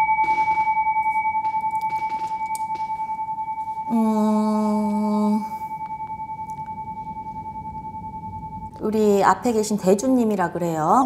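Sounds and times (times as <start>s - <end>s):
singing bowl ringing: 0.0s - 10.8s.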